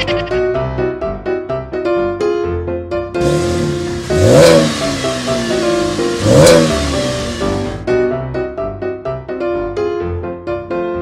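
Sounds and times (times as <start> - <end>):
background music: 0.0 - 11.0
car engine revving: 3.2 - 7.8
car engine starting: 3.2 - 7.9.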